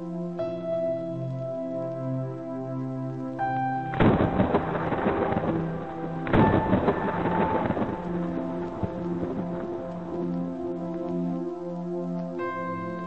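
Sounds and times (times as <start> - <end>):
soft ambient music: 0.0 - 13.0
thunder crash: 3.9 - 9.6.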